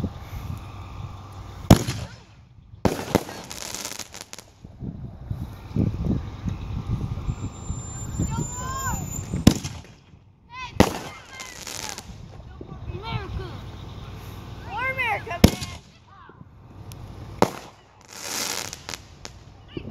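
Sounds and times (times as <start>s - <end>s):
firework bangs: 1.0s - 6.2s, 7.0s - 12.5s, 13.7s - 19.9s
rapid firework cracks: 1.7s - 4.7s, 9.2s - 10.2s, 10.8s - 12.3s, 15.4s - 16.1s, 16.8s - 19.6s.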